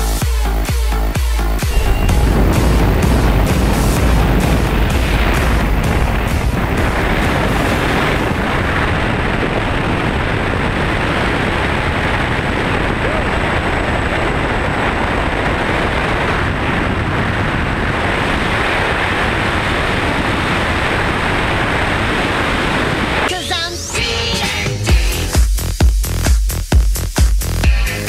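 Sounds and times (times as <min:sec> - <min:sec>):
aircraft engine noise: 0:01.5 - 0:23.3
wind buffeting microphone: 0:01.6 - 0:23.3
wind rushing: 0:01.6 - 0:23.3.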